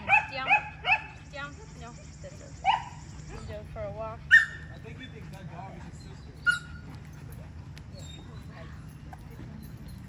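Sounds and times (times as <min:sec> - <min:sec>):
dog yipping: 0:04.3 - 0:04.7, 0:06.4 - 0:06.8.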